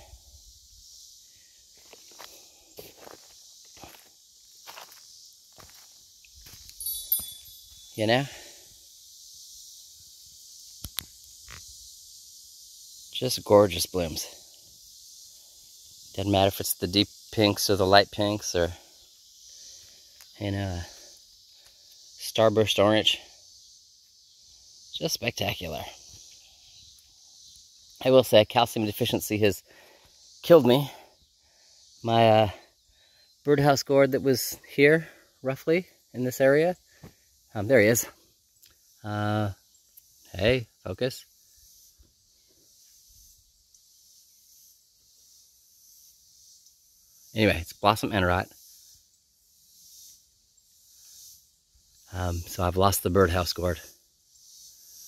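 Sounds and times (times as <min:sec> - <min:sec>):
high background hiss: 0:00.0 - 0:55.0
footsteps on grass and mulch: 0:01.7 - 0:08.0.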